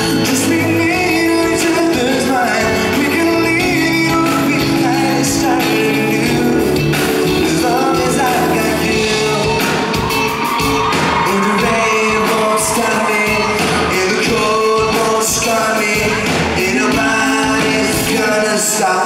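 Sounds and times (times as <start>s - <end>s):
man singing into a microphone: 0.0s - 10.0s, 11.2s - 19.0s
pop-rock band playing: 0.0s - 19.0s.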